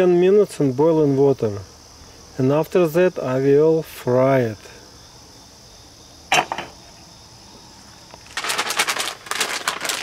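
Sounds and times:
pot lid clink: 0:06.3 - 0:06.8
plastic bag crinkling: 0:08.1 - 0:10.0.

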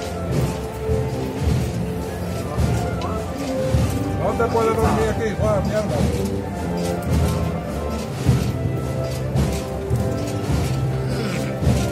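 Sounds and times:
wind band playing a march: 0:00.0 - 0:11.9.

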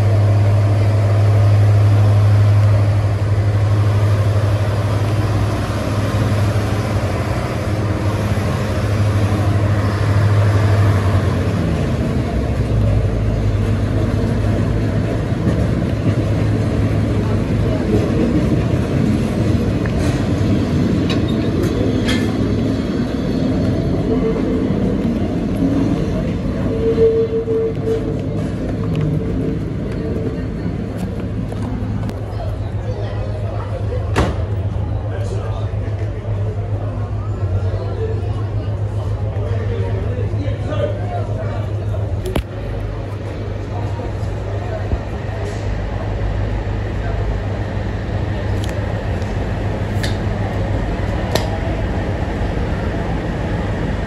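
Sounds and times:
train rumbling on track: 0:00.0 - 0:54.0.

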